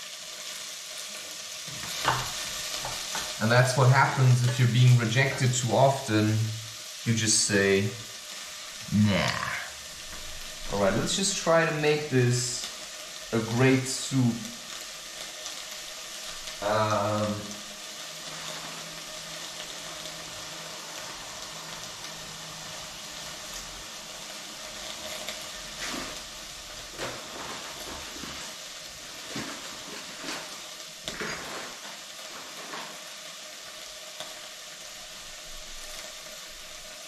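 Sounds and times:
leek sizzling in a pot: 0.0s - 37.0s.

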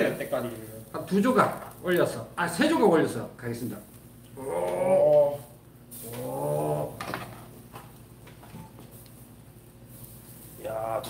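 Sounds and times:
steaks sizzling on grill: 0.0s - 11.0s
people exclaiming ooh: 4.4s - 7.0s.

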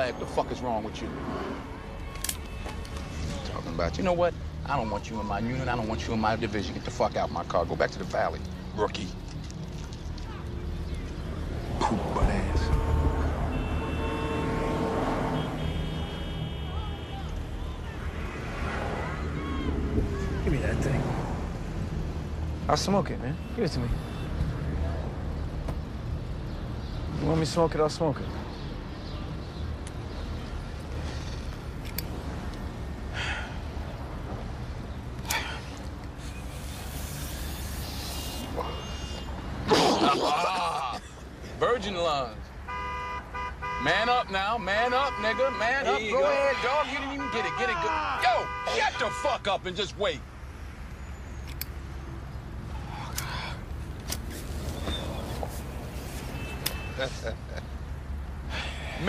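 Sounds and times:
breathy hisses: 35.3s - 39.2s.

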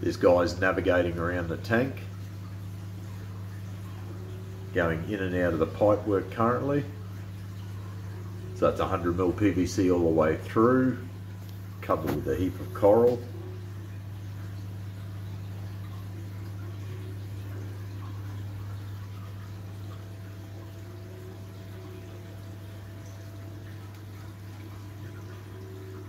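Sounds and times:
pump humming: 0.0s - 26.0s
water running: 0.0s - 26.0s.

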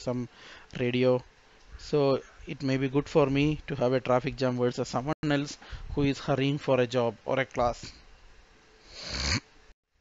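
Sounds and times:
breath drawn in close to microphone: 8.8s - 9.4s.

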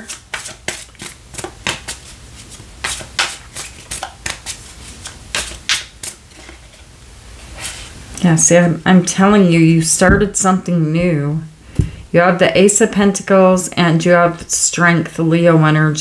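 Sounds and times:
cards being shuffled: 0.0s - 6.7s.

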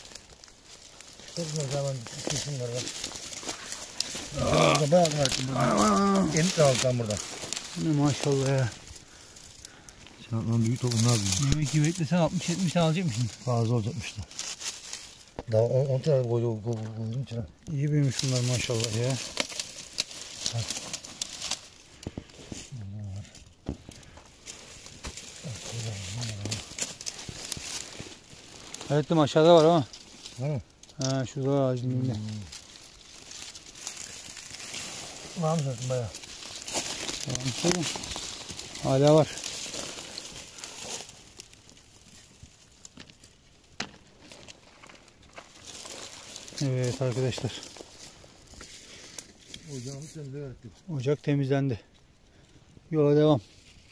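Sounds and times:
leaves and twigs crackling: 0.0s - 53.9s
man's low voice: 4.2s - 8.8s, 22.7s - 23.4s, 25.4s - 26.8s, 28.9s - 32.6s, 37.2s - 38.1s.

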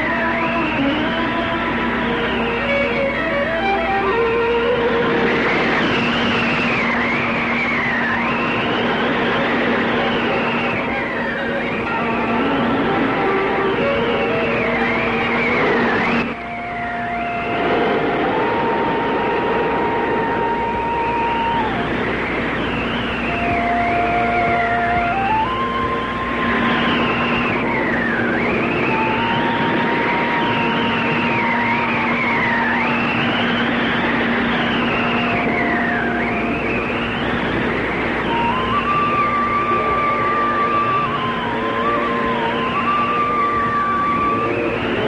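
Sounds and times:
steady low drone: 0.0s - 45.0s
sustained melody notes: 0.0s - 45.0s.

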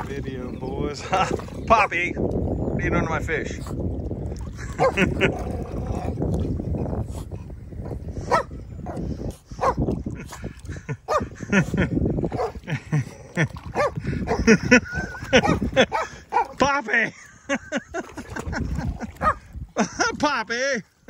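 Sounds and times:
water splashing: 0.0s - 7.4s, 9.6s - 21.0s.

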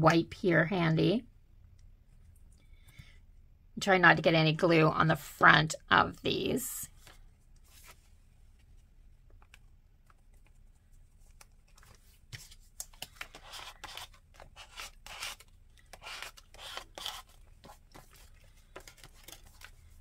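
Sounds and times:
paper rustling and scraping: 11.2s - 20.0s.

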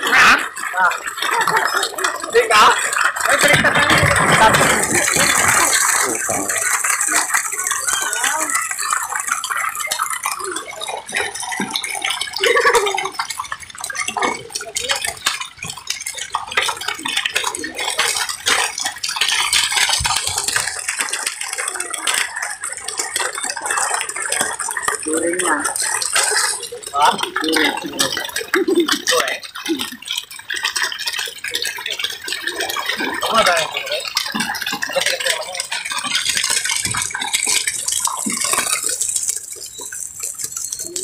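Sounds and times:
people's voices: 0.0s - 13.2s, 21.6s - 30.0s
fish thrashing and splashing: 0.0s - 41.0s.

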